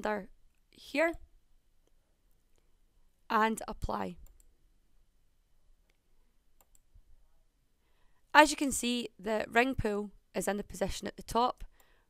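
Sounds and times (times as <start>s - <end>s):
faint computer mouse clicks: 6.6s - 6.9s.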